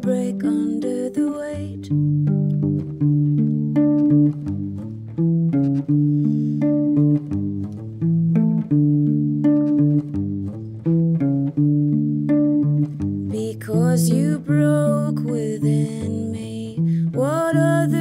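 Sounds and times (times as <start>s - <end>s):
fingerpicked solo guitar: 0.0s - 18.0s.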